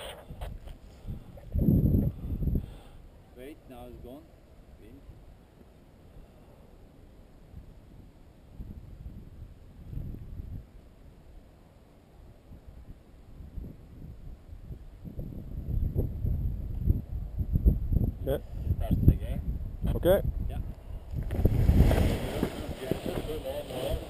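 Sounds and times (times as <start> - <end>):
wind buffeting microphone: 0.0 - 2.9, 7.5 - 10.8, 12.5 - 24.0.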